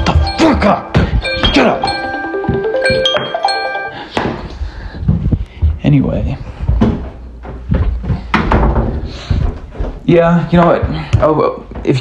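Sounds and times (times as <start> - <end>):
alarm tone with chiming notes: 0.0 - 4.4.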